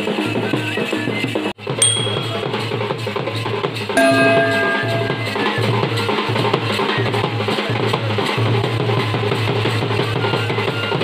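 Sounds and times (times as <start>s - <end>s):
steady low tone: 4.0s - 5.7s.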